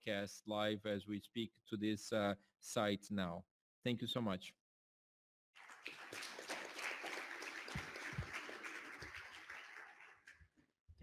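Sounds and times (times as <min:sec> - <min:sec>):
audience applauding: 0:05.6 - 0:10.4.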